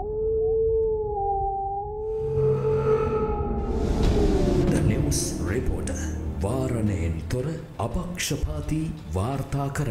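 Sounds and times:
low rumble: 1.9s - 9.2s
wolf howling: 2.1s - 4.8s.

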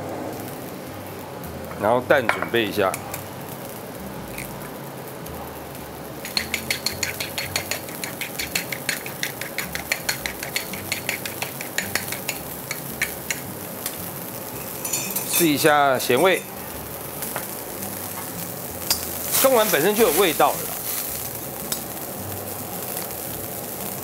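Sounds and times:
low hiss from stove: 0.0s - 24.0s
utensil clicking against bowl: 6.2s - 13.5s.

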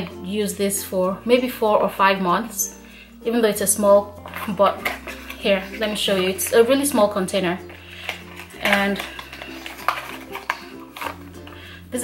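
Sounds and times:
soft music of low notes: 0.0s - 12.0s.

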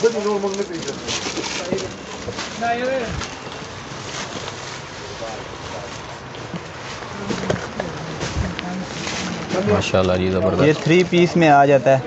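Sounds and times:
plastic wrapping crinkling: 0.0s - 11.3s.

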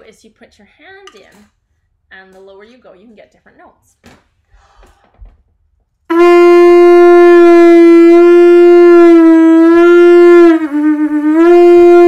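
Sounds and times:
conch shell blown: 6.1s - 12.0s.

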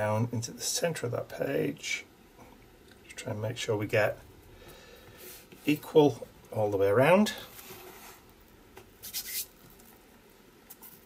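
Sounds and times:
hands rubbing paper: 7.5s - 9.9s.

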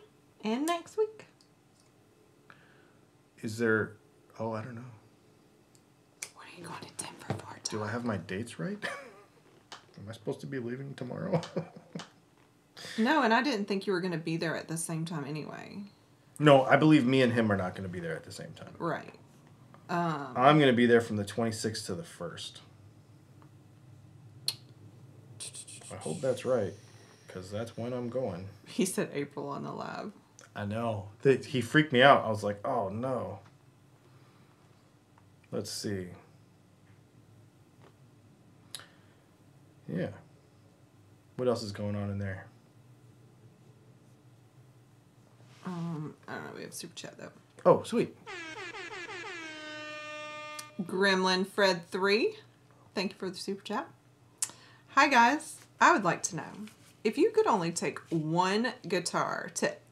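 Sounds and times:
horn-like alert tone: 48.2s - 51.3s.

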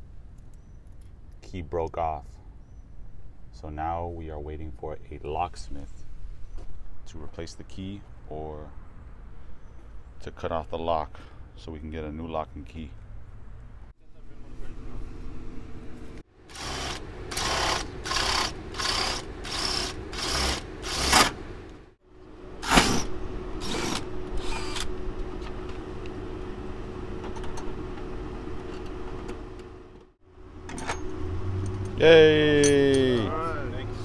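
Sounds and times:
cordless drill boring into metal: 16.5s - 21.4s, 23.6s - 24.9s.

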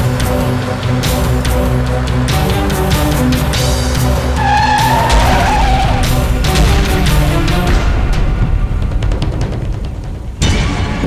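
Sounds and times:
car tyres screeching: 0.0s - 8.0s
background music low tones: 0.0s - 11.0s.

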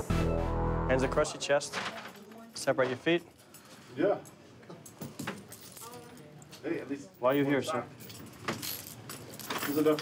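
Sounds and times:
handcuff chain jangling: 3.2s - 10.0s.

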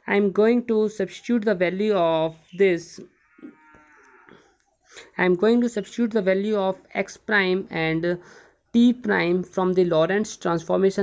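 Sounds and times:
faint drawn-out pitched call: 2.4s - 4.9s.

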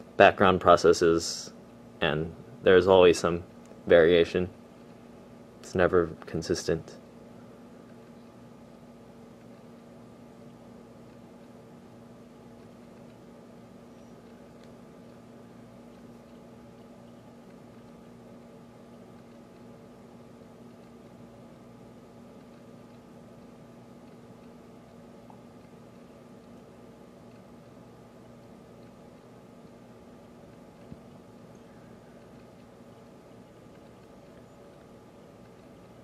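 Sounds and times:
constant low tone: 0.0s - 36.0s
room tone hum and hiss: 0.0s - 36.0s.

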